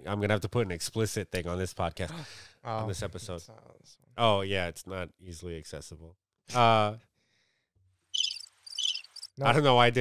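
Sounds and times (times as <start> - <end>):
cricket chirping sound effect: 8.2 - 9.3.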